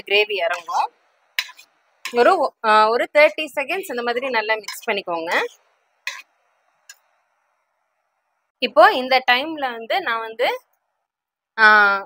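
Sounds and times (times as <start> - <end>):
faint steady hiss: 0.0 - 11.1.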